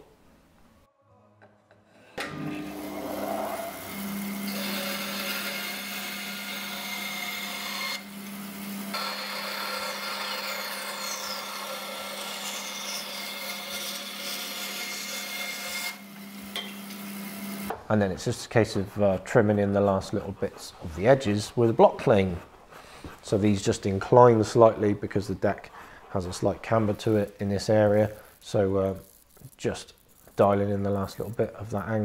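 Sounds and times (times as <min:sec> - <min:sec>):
bandsaw cutting wood: 0:02.2 - 0:17.7.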